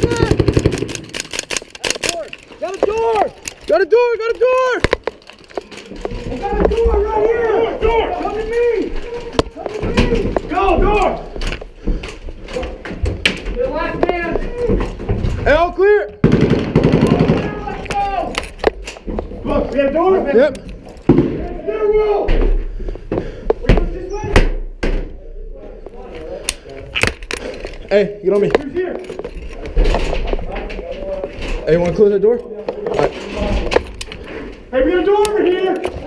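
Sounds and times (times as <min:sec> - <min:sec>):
rifle shots: 0:00.0 - 0:02.1, 0:16.2 - 0:17.6
men shouting: 0:06.2 - 0:11.3.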